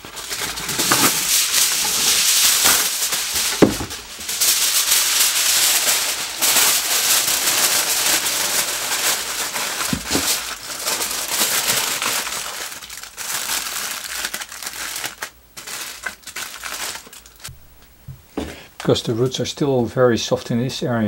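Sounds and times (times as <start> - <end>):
aluminium foil crinkling: 0.0 - 18.0
dull knock: 3.6 - 4.0.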